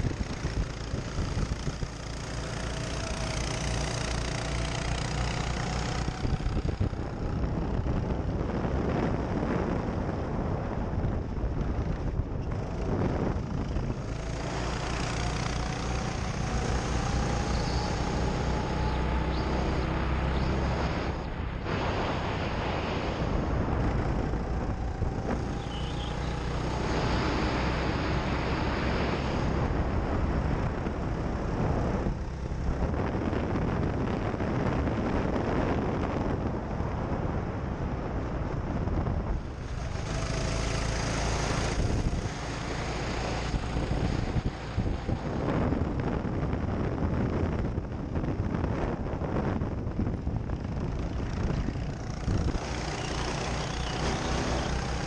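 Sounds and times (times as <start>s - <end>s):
go-kart motor revving: 0.0s - 9.2s, 11.7s - 22.1s, 23.2s - 33.0s, 39.4s - 45.8s, 50.6s - 55.0s
wind buffeting microphone: 0.0s - 55.0s.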